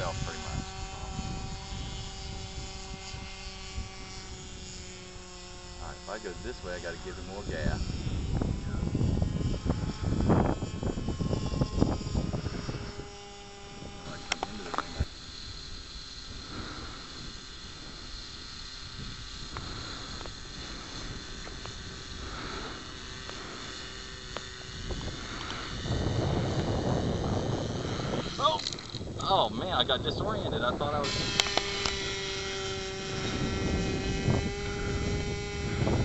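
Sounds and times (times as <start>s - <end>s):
model aircraft motor whine: 0.0s - 36.0s
low rumbling gusts: 18.9s - 36.0s.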